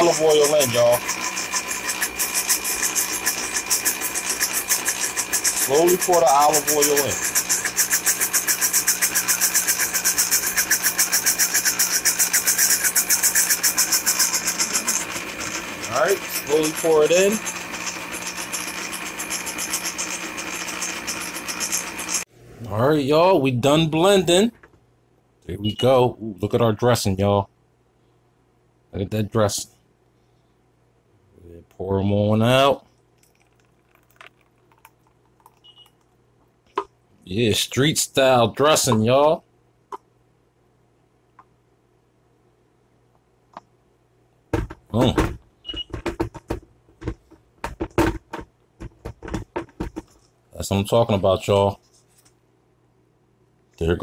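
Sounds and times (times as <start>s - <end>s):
blender motor pulsing hum: 0.0s - 22.3s
thick dressing pouring: 33.1s - 35.6s.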